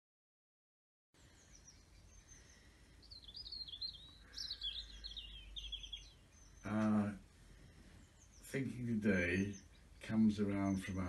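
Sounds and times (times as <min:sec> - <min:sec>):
songbird warbling: 0:01.2 - 0:11.0.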